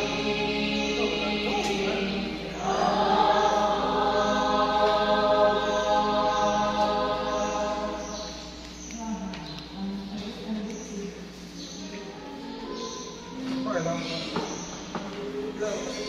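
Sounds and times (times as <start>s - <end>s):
choir singing a hymn: 0.0s - 8.7s.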